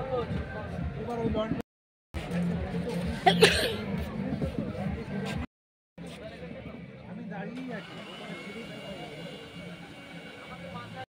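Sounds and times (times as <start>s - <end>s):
background chatter of voices: 0.0s - 1.6s, 2.2s - 11.0s.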